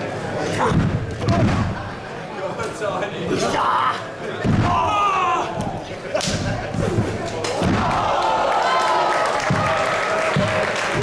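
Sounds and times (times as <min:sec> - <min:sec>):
voices calling out in hall: 0:00.0 - 0:11.0.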